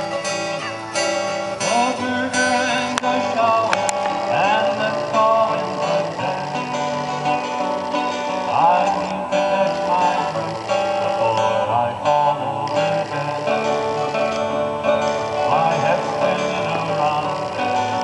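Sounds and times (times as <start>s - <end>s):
acoustic guitar and ukulele strumming: 0.0s - 18.0s.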